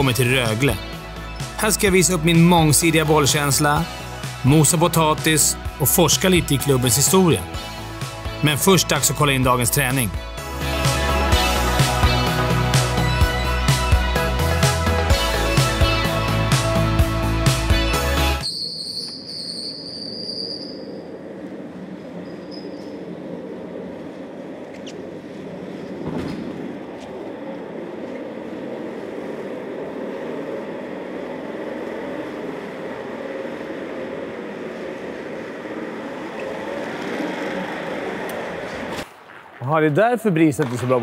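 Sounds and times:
high whistle: 18.4 - 21.0
chair casters rolling on hard floor: 30.8 - 39.0.

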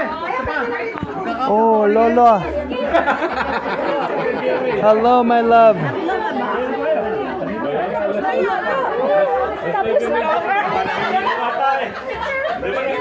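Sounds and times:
overlapping crowd chatter: 0.0 - 13.0.

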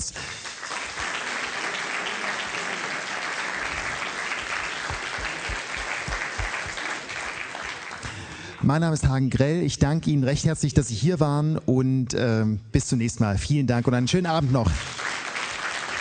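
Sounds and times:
audience applauding: 0.0 - 8.6, 14.3 - 16.0.

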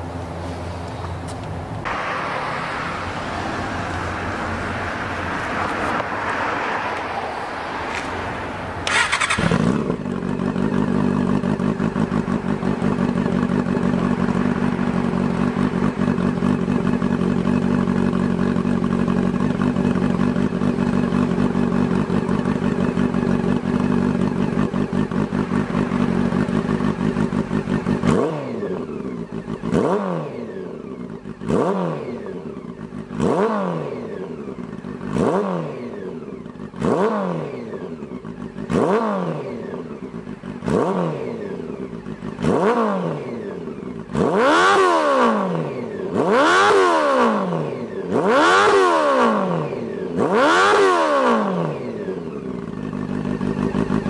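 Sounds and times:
motorcycle engine revving: 1.0 - 54.0.

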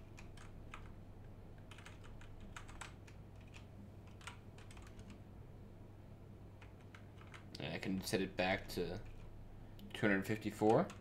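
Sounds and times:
keystrokes on computer keyboard: 0.0 - 1.0, 1.6 - 5.2, 6.6 - 7.6, 9.0 - 9.3, 10.5 - 11.0
steady low hum: 0.0 - 11.0.

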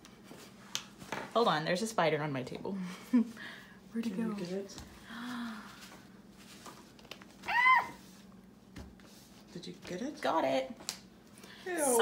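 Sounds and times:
woman squealing: 7.4 - 8.0.

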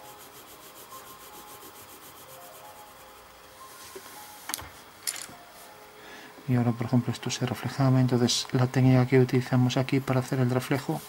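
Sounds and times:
pencil scratching on paper: 0.0 - 3.3.

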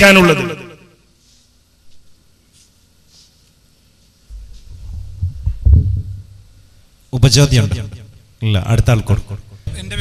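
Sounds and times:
dull thumps on microphone: 4.3 - 6.3
microphone handling rumble: 4.3 - 6.5.

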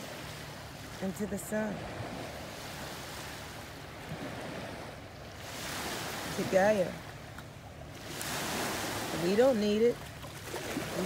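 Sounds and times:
small sea waves washing in: 0.0 - 11.0.

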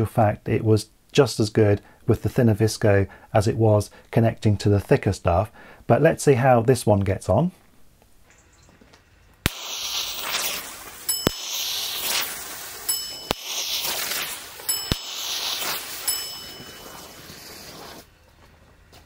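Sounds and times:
e-match sharp pops: 9.4 - 18.1
fuse burning hiss: 9.4 - 18.1
high chime-like ding: 11.0 - 17.9.

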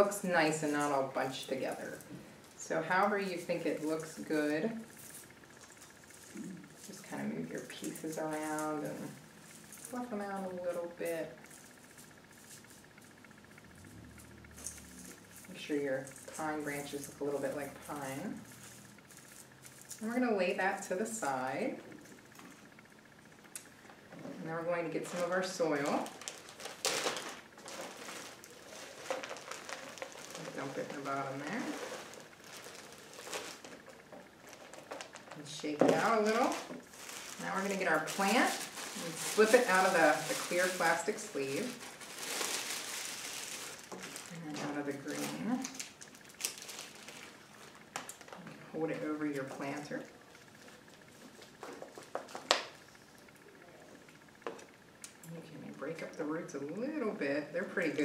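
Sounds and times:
handling noise: 25.1 - 45.4
plant pot rustling and scraping: 27.0 - 33.9, 36.0 - 44.4.

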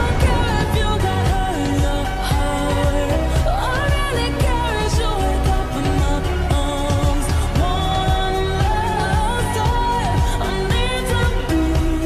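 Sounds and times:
steady drum beat: 0.0 - 9.9
person singing pop melody: 0.0 - 12.0.

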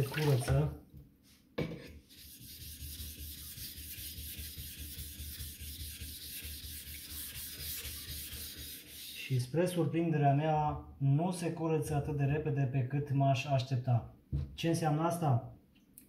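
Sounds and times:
knock: 14.3 - 14.6.

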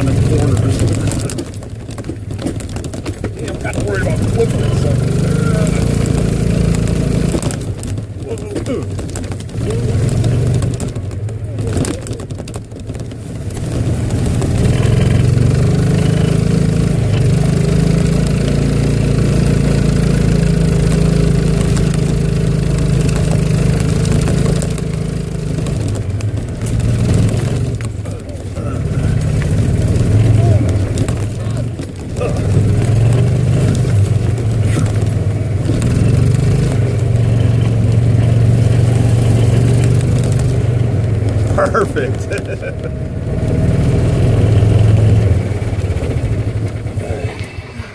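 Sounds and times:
golf cart motor running: 0.0 - 47.9.

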